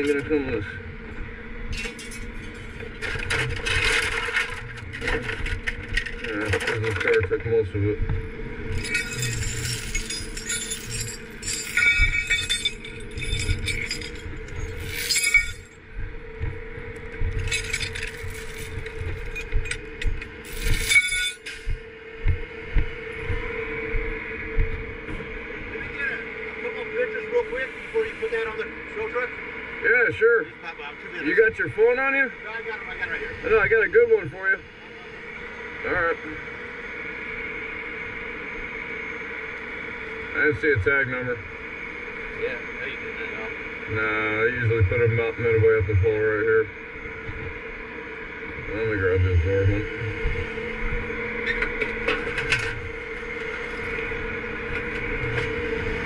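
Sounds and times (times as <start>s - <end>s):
voices: 0.0s - 0.8s, 6.2s - 8.2s, 25.7s - 36.5s, 40.3s - 41.5s, 42.3s - 47.4s, 48.5s - 51.1s
steady hum: 0.0s - 56.0s
metal chains clinking: 8.8s - 15.8s, 17.4s - 19.5s, 20.4s - 21.5s.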